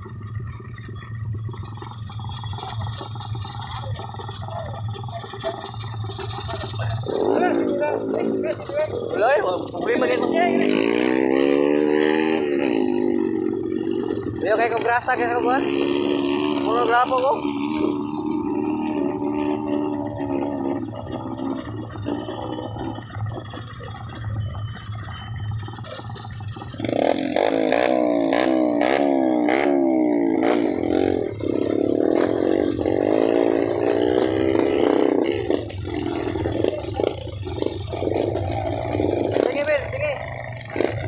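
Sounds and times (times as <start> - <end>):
dirt bike engines idling: 0.0 - 41.0
motorcycle engine revving: 0.0 - 41.0.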